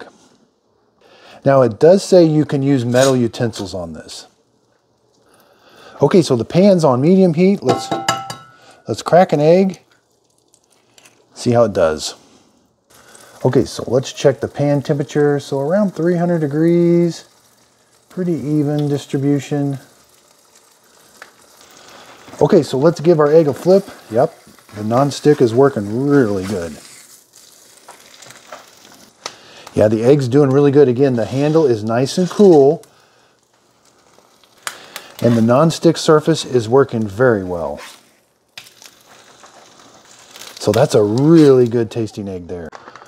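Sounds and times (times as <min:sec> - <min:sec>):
egg sizzling in frying pan: 0:03.0 - 0:42.0.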